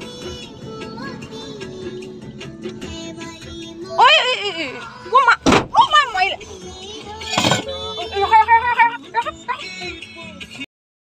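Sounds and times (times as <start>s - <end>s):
sharp bang inside car: 5.4s - 5.8s.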